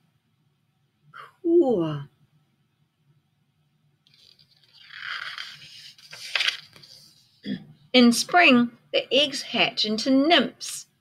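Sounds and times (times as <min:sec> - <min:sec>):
paper crinkles: 0:04.1 - 0:07.2
paper page rustling: 0:04.1 - 0:07.3.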